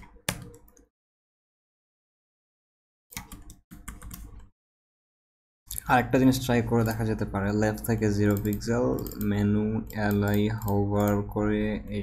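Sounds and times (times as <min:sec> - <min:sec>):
computer keyboard typing: 0:00.0 - 0:00.9, 0:03.1 - 0:04.5, 0:08.2 - 0:11.4.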